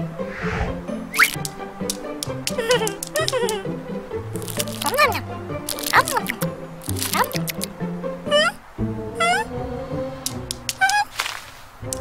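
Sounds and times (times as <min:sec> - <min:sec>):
cartoon background music: 0:00.0 - 0:11.2
squeaky rising calls: 0:01.0 - 0:01.5, 0:08.3 - 0:11.2.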